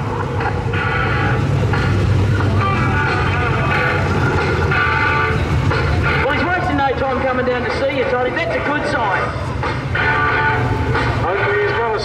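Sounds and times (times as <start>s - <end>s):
race car engine rumbling: 0.0s - 12.0s.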